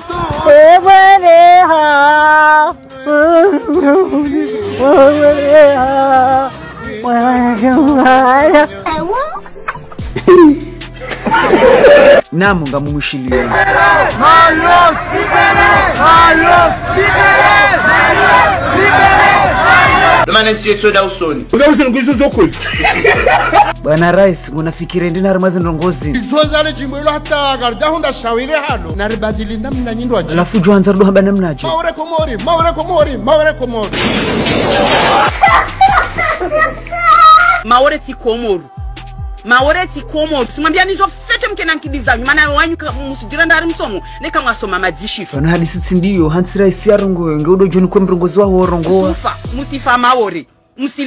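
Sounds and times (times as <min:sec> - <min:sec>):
background music with low bass: 0:00.0 - 0:51.0
people shouting: 0:11.2 - 0:12.2, 0:13.3 - 0:20.3, 0:34.6 - 0:37.7
child's wavering voice: 0:35.5 - 0:37.7.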